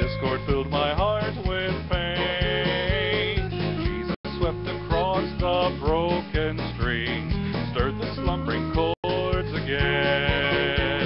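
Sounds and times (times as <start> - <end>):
bass and guitar accompaniment: 0.0 - 11.0.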